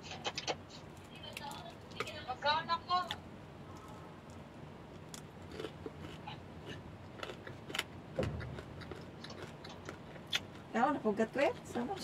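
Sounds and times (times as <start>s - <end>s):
biting and chewing crunchy food: 3.0s - 12.0s
low thud: 8.2s - 8.8s.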